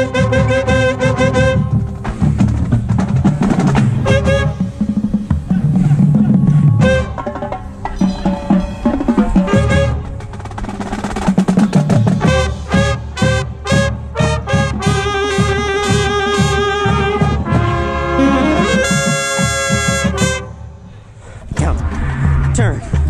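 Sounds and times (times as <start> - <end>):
marching drums: 0.0 - 20.6
marching band wind chord: 0.0 - 21.2
short horn hits: 3.8 - 5.9, 6.8 - 10.3, 11.8 - 20.6.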